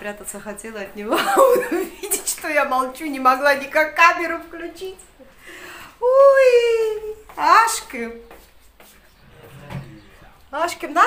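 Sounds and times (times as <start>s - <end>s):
woman speaking: 0.0s - 5.1s, 6.0s - 8.3s, 10.5s - 11.0s.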